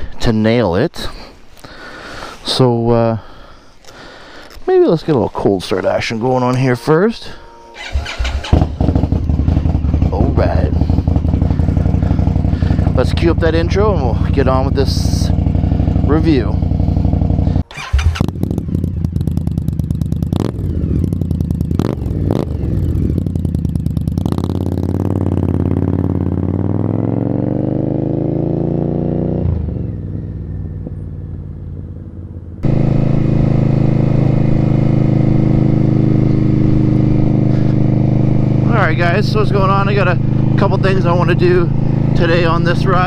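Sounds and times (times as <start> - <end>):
motorcycle engine starting and idling: 4.9 - 43.0
exhaust cracks: 7.8 - 26.8, 32.6 - 43.0.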